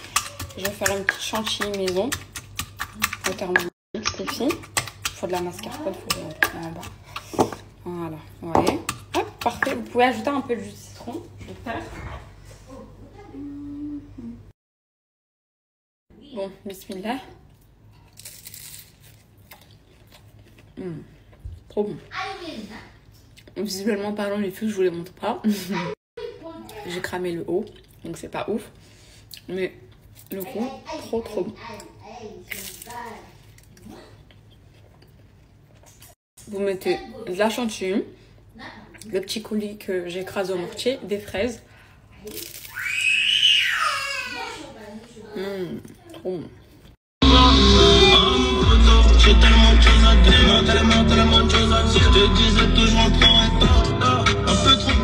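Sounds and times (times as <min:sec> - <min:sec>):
person chewing: 0:00.0 - 0:01.1, 0:17.5 - 0:21.4, 0:32.5 - 0:36.2
woman humming with enjoyment: 0:13.4 - 0:14.5.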